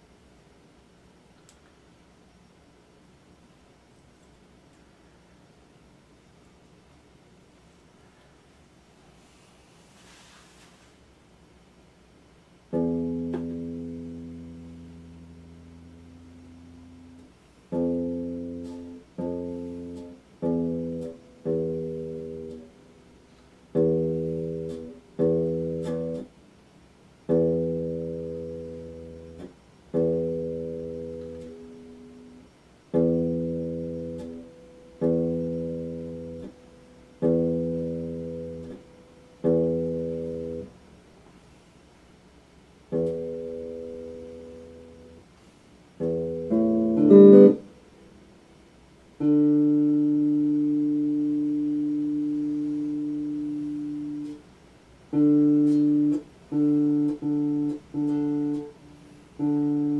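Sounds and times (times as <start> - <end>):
electric guitar strums: 12.7 - 26.4, 27.2 - 40.8, 42.8 - 45.3, 46.0 - 47.8, 49.1 - 59.9.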